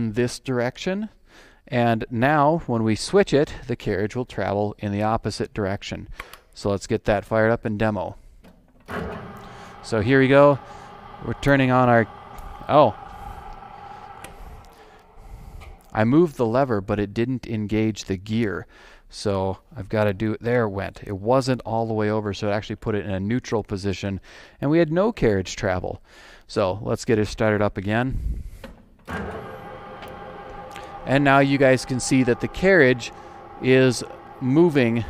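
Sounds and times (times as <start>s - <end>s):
metal lathe motor hum: 8.9s - 16.0s, 29.1s - 35.0s.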